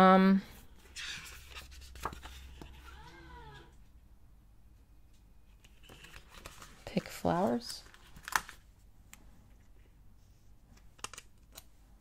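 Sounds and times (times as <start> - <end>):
pages rustling: 0.8 - 3.0, 5.4 - 8.7.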